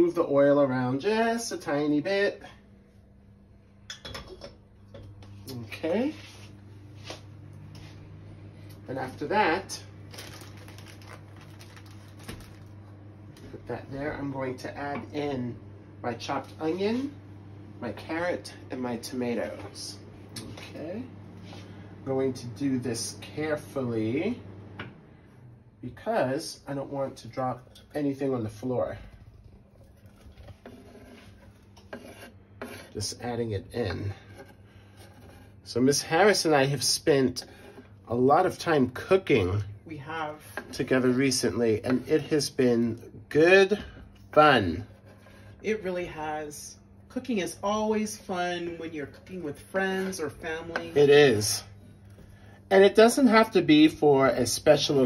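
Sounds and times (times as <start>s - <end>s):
faint steady hum: 0.0s - 55.0s
knife scraping cutting board: 28.5s - 33.2s, 33.8s - 35.7s, 44.2s - 45.7s.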